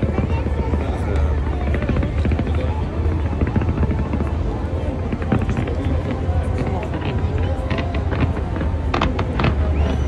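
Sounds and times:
crowd voices: 0.0s - 10.0s
deep rumble: 0.0s - 10.0s
fireworks crackling: 0.0s - 10.0s.

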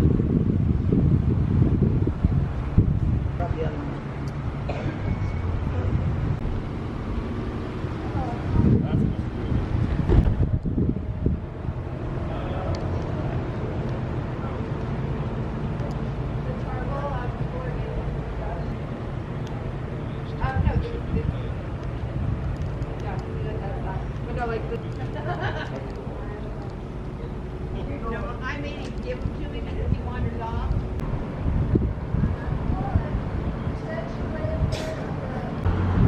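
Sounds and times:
steady low rumble: 0.0s - 36.0s
people talking nearby: 12.2s - 30.9s, 32.1s - 35.7s.

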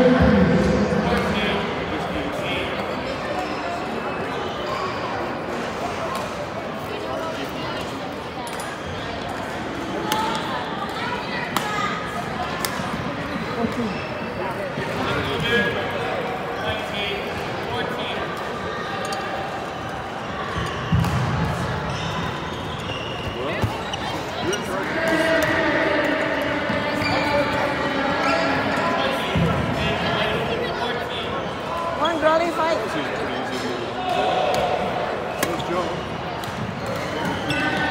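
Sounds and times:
hall chatter: 0.0s - 37.9s.

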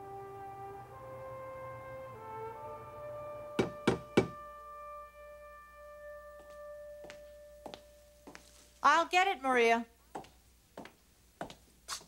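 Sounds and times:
background music chord: 0.0s - 8.9s
knocks on a door: 3.6s - 4.4s.

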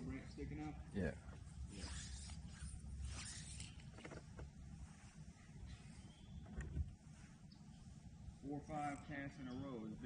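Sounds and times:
low steady rumble: 0.0s - 10.0s
fly rod line swishing: 1.6s - 4.0s, 4.6s - 6.3s.

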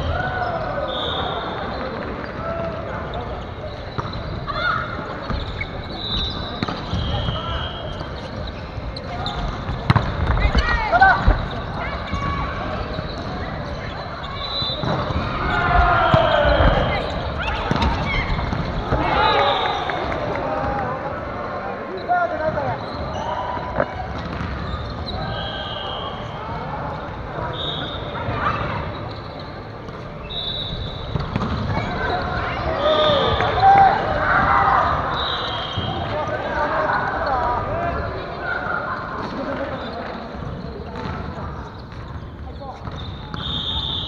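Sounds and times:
sneakers squeaking on wooden court: 0.2s - 20.1s, 21.8s - 44.0s
players shouting: 10.3s - 29.0s, 30.3s - 40.0s.

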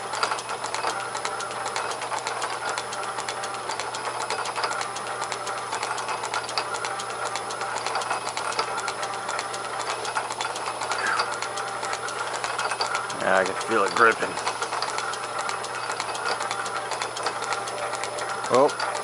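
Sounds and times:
metal lathe running: 0.0s - 19.0s
rapid mechanical ticking: 0.0s - 19.0s.

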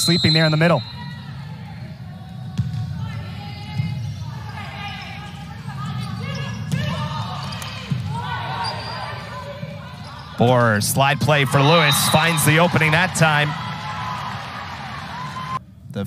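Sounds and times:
players calling out: 0.0s - 15.6s.

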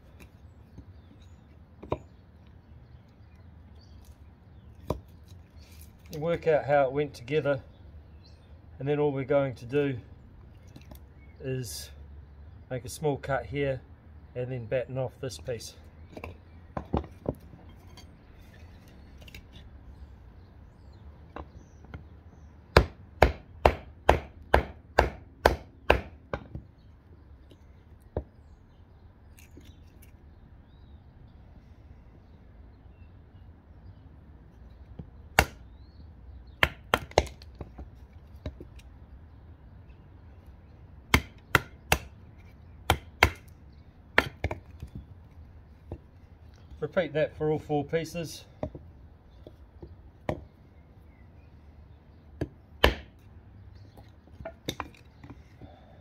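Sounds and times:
knife chopping wood: 22.7s - 26.7s, 35.0s - 35.7s, 36.6s - 38.9s, 41.1s - 45.1s, 52.4s - 53.3s.

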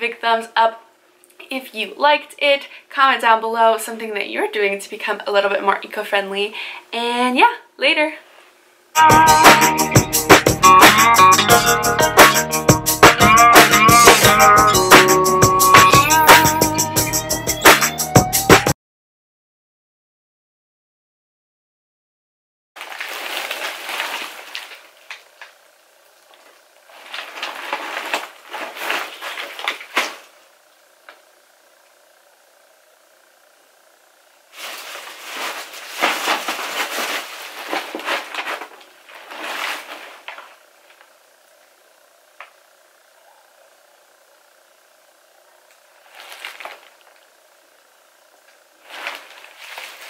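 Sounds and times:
plastic trash bags rustling: 22.8s - 30.4s, 34.5s - 41.1s, 45.9s - 47.2s, 48.4s - 50.0s.

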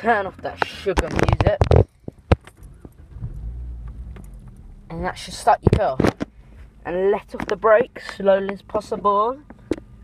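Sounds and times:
car engine idling: 1.9s - 10.0s.

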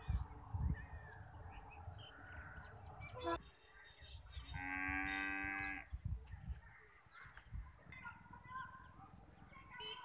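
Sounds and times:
cow mooing: 4.6s - 5.8s.

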